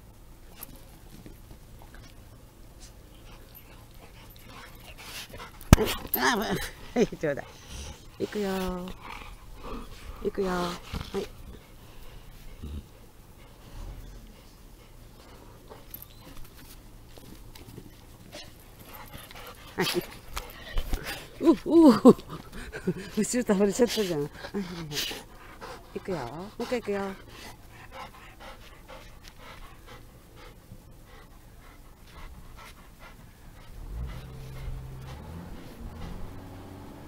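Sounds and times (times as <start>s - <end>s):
dog panting: 2.8s - 36.8s.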